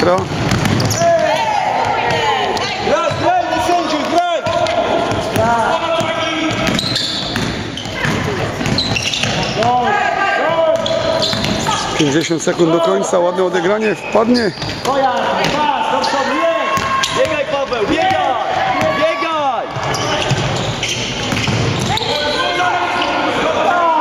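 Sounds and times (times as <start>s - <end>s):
basketball bouncing on floor: 0.0s - 3.2s, 4.4s - 9.4s, 21.3s - 21.9s
players shouting: 0.7s - 13.9s, 14.9s - 24.0s.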